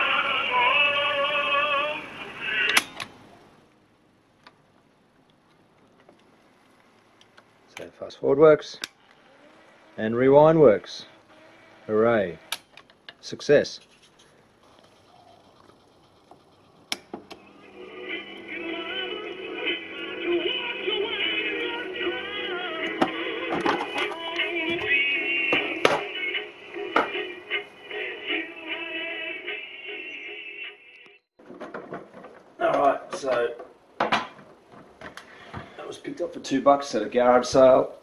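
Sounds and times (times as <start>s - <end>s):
tape playing music with singing: 0.0s - 3.6s, 16.4s - 31.1s.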